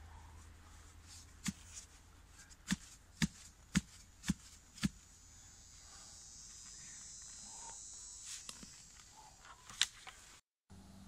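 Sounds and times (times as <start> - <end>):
post-hole digger striking soil: 2.6 - 5.0.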